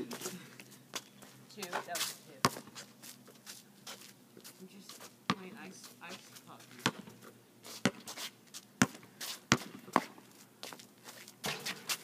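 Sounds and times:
basketball bouncing on asphalt: 0:01.6 - 0:02.8, 0:05.3 - 0:08.2, 0:08.8 - 0:10.8, 0:11.4 - 0:12.0.

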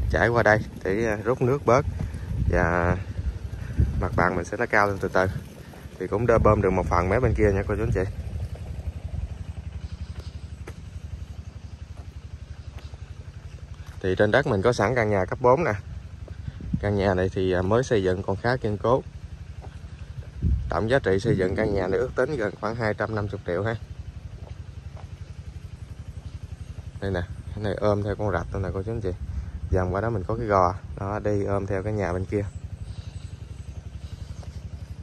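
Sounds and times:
diesel engine running: 0:00.0 - 0:35.0
motor chugging: 0:00.0 - 0:35.0.

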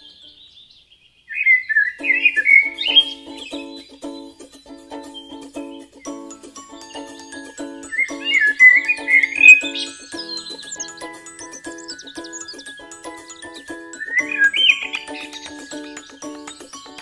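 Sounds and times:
high warbling lead melody: 0:02.0 - 0:17.0
strummed ukulele chords: 0:02.0 - 0:17.0.

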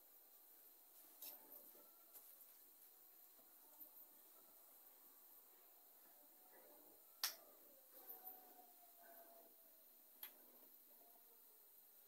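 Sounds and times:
faint indistinct sounds: 0:00.0 - 0:12.0.

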